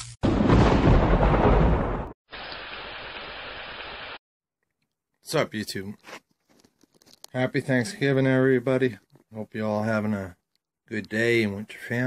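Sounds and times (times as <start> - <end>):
thunder rumble: 0.2 - 2.2
rain hissing: 2.3 - 4.2.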